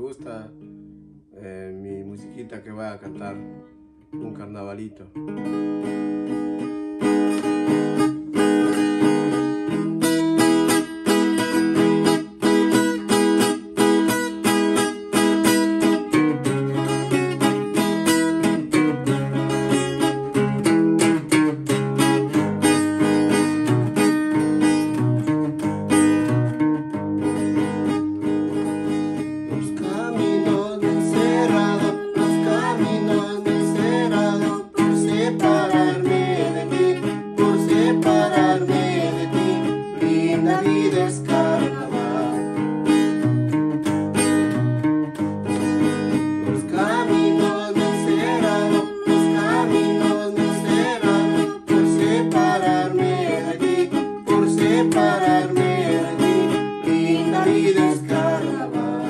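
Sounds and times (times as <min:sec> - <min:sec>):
acoustic guitar strummed briskly: 0:01.8 - 0:59.0
voices singing: 0:29.6 - 0:42.9, 0:46.5 - 0:59.0.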